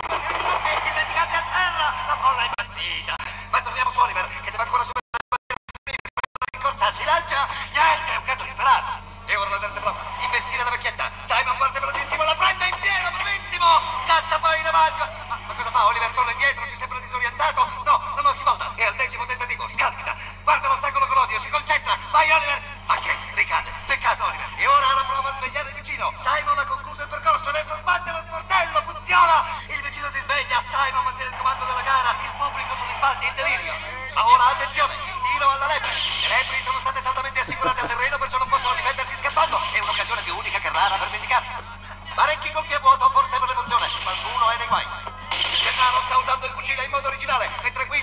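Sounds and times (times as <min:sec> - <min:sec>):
steady low hum: 0:00.0 - 0:05.0, 0:06.6 - 0:48.0
person speaking: 0:36.8 - 0:41.2.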